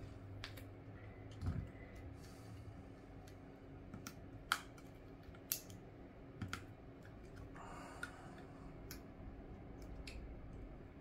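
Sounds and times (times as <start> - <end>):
small clicks and taps: 6.4 - 9.1.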